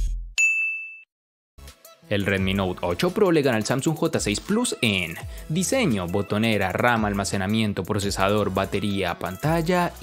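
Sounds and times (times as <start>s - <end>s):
bright ding: 0.4s - 1.1s
background music: 1.6s - 10.0s.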